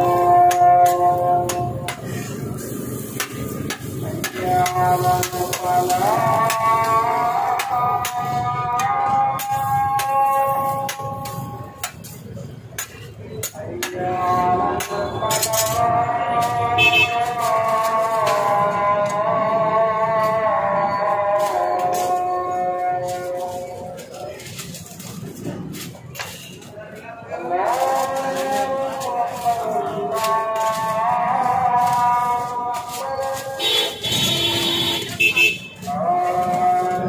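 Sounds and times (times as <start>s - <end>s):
food stall clatter: 0.0s - 37.0s.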